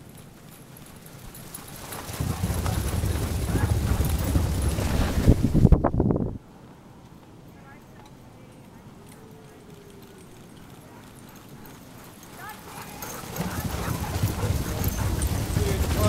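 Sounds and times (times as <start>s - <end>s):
dog paws pattering on snow: 0.0s - 5.5s, 8.0s - 16.0s
sled running on snow: 0.0s - 5.9s, 9.3s - 16.0s.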